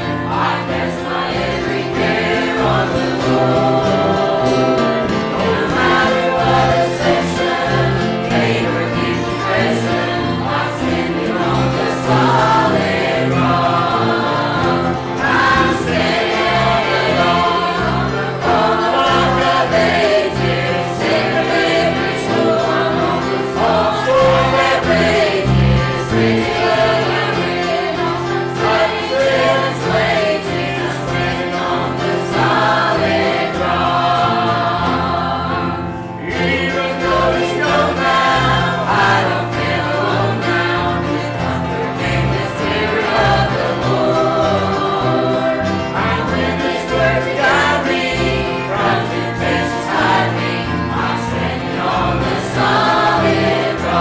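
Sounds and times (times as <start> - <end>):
acoustic guitar: 0.0 - 54.0
choir singing a hymn: 0.0 - 54.0
piano: 0.0 - 54.0.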